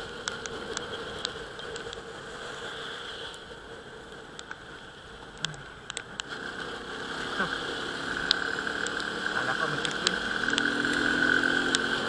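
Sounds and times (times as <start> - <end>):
motorcycle road noise: 0.0 - 12.0.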